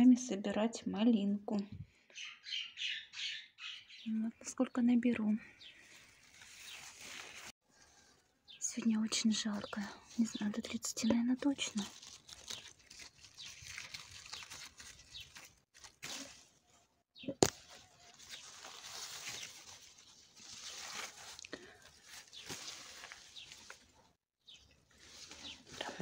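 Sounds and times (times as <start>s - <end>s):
leaves and stems rustling: 5.1s - 26.0s.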